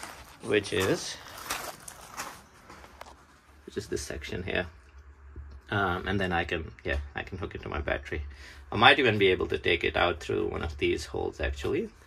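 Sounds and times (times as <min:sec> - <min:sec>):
footsteps on gravel: 0:00.0 - 0:03.6.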